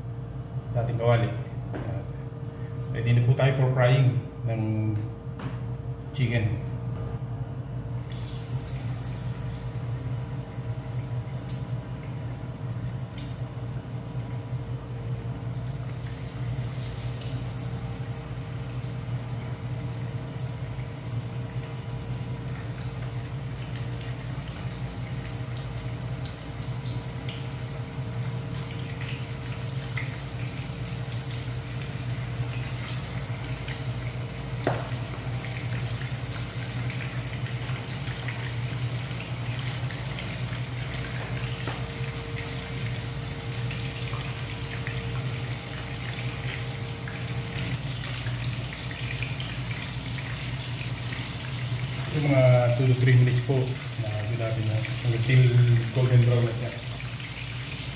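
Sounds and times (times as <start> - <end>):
constant low hum: 0.0 - 57.9
chicken deep-frying in oil: 7.8 - 57.9.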